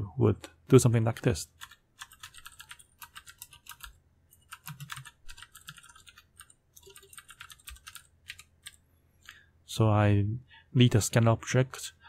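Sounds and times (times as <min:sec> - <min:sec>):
keyboard typing: 0:01.0 - 0:08.8.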